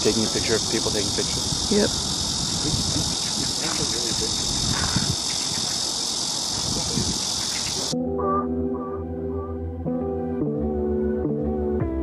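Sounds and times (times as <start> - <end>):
cicadas buzzing: 0.0 - 8.0.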